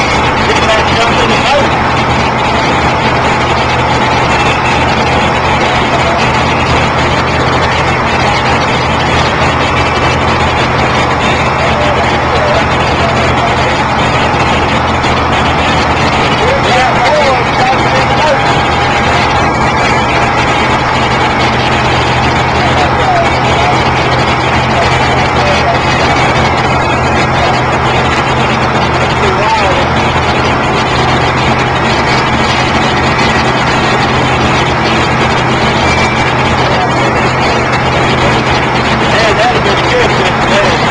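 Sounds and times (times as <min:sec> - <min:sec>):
engine hum: 0:00.0 - 0:40.9
indistinct voices: 0:00.0 - 0:40.9.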